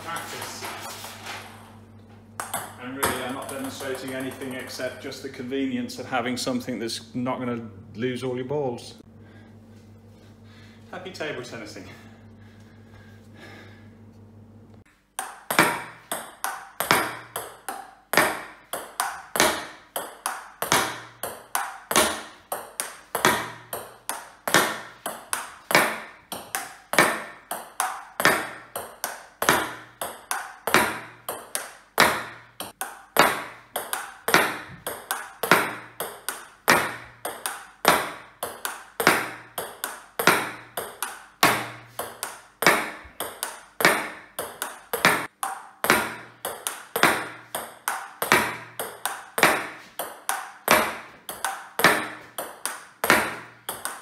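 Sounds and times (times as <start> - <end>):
table tennis ball clicking: 2.4 - 5.0, 15.2 - 54.0.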